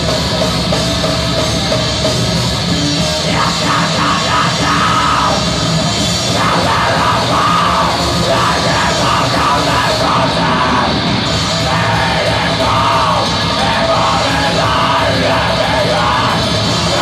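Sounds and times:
distorted electric guitars: 0:00.0 - 0:17.0
drums: 0:00.0 - 0:17.0
harsh screamed vocals: 0:03.0 - 0:17.0.

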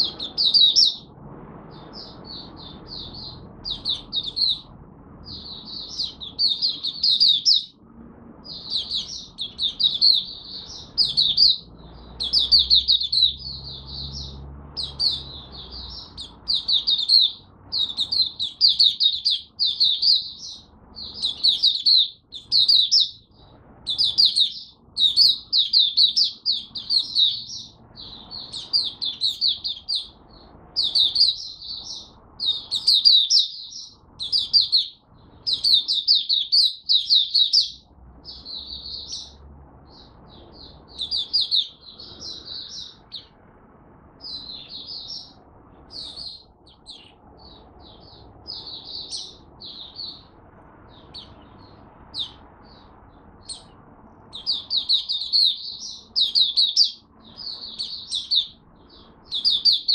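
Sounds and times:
bird twittering: 0:00.0 - 0:43.4, 0:44.2 - 0:59.9.

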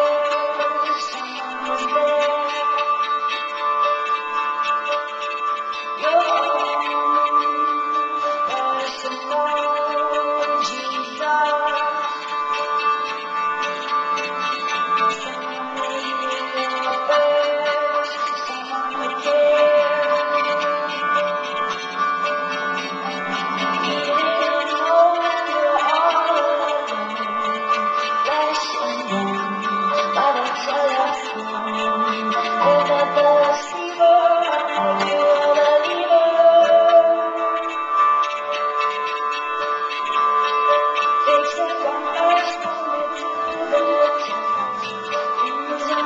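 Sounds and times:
acoustic folk band playing: 0:00.0 - 0:46.0
drums: 0:00.0 - 0:46.0.

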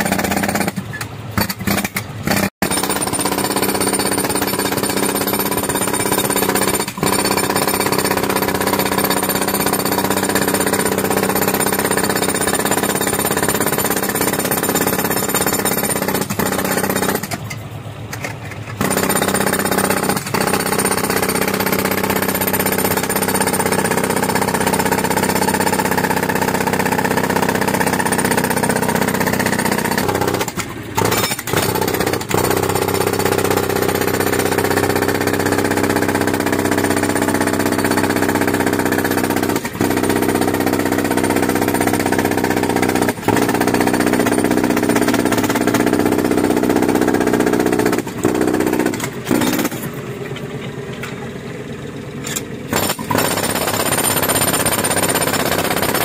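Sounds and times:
jackhammer hammering soil: 0:00.0 - 0:17.6, 0:18.2 - 0:50.1, 0:52.2 - 0:56.0.

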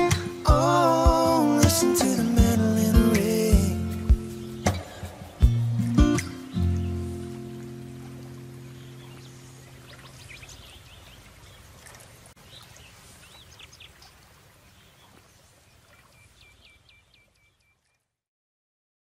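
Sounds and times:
acoustic guitar chord ringing: 0:00.0 - 0:09.5
birds chirping: 0:00.0 - 0:18.1.

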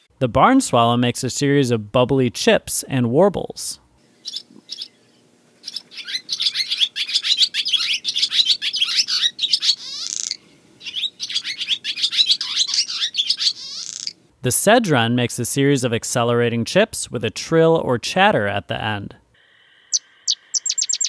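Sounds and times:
barn swallow singing: 0:04.1 - 0:14.2, 0:19.9 - 0:21.0.

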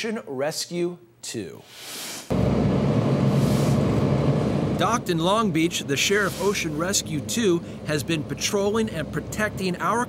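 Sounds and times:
man narrating: 0:00.0 - 0:01.7, 0:04.8 - 0:10.0
hiss: 0:01.7 - 0:02.3, 0:03.3 - 0:03.8, 0:06.1 - 0:06.8
boat engine idling: 0:02.3 - 0:10.0.

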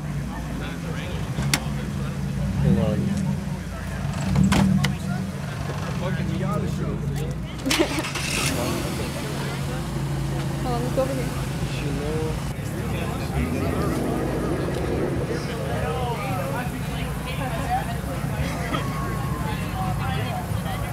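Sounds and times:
car engine idling: 0:00.0 - 0:20.9
crowd voices: 0:00.0 - 0:20.9.

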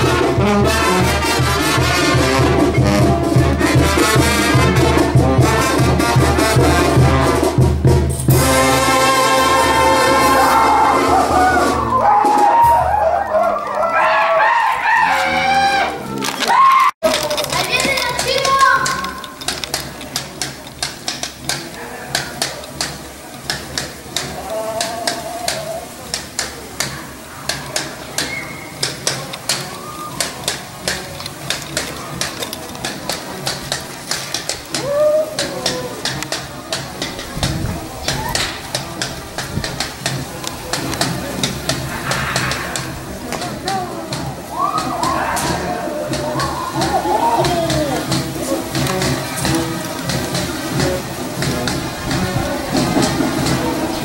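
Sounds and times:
percussion steady beat: 0:00.0 - 0:13.2, 0:17.0 - 0:54.0
crowd voices and calls: 0:00.0 - 0:54.0.

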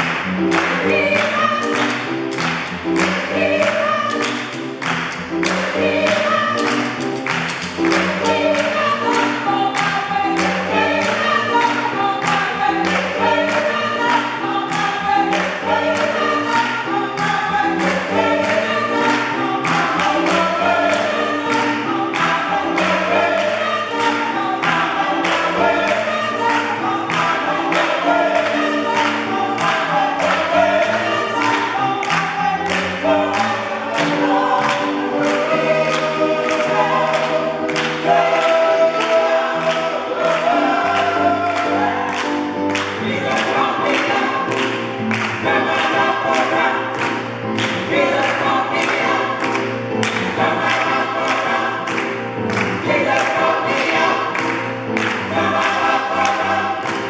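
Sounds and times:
gospel choir singing: 0:00.0 - 0:57.0
hands clapping: 0:00.0 - 0:57.0.

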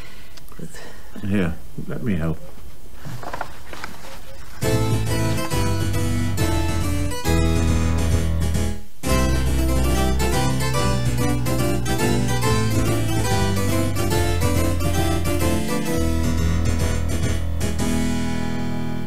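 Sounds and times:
keyboard music: 0:04.6 - 0:19.0.

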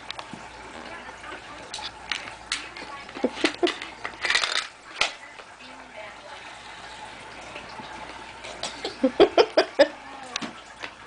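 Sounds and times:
plastic toy parts clattering: 0:02.1 - 0:05.1.

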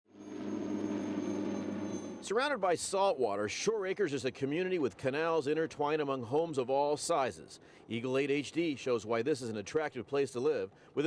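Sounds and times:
helicopter engine and rotor drone: 0:00.1 - 0:02.3.

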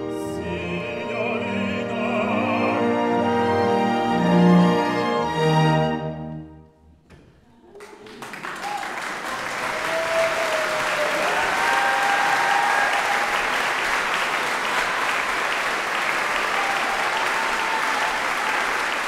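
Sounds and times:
audience applauding: 0:07.7 - 0:19.0
shouts from audience: 0:08.5 - 0:13.5, 0:16.3 - 0:18.8.

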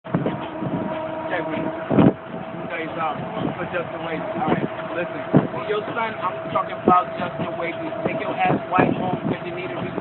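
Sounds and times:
bus running with steady whine: 0:00.1 - 0:10.0
voices talking in background: 0:00.1 - 0:10.0.

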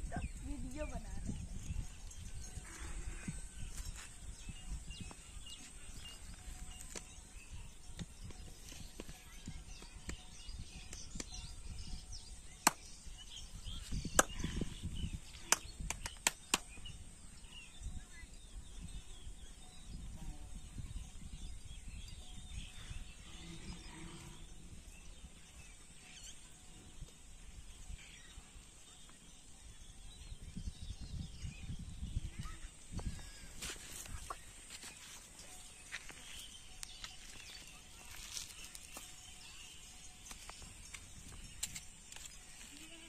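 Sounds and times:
wind rumble on microphone: 0:00.0 - 0:34.7, 0:35.5 - 0:43.0.

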